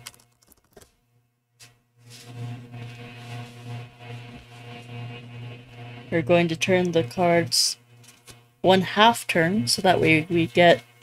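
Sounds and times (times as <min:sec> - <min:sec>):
low droning tone: 0:02.1 - 0:10.8.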